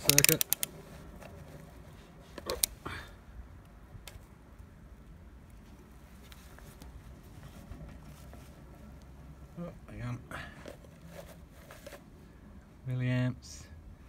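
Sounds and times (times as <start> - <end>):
multimeter dial clicks: 0.0 - 0.7.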